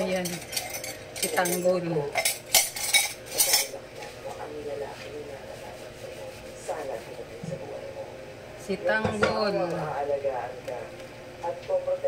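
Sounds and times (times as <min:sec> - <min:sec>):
dishes and cutlery clinking: 0:00.0 - 0:04.1.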